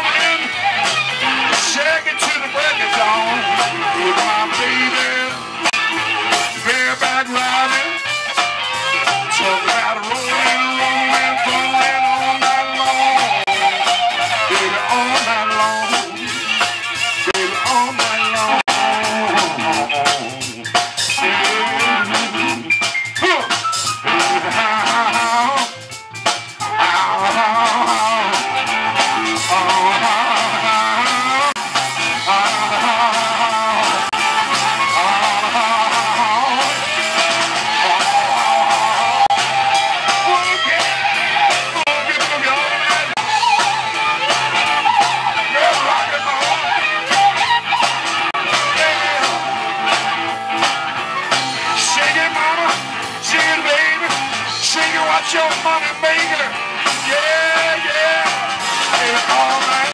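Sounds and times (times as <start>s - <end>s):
blues harmonica bending notes: 0.0s - 59.9s
electric blues band playing: 0.0s - 59.9s.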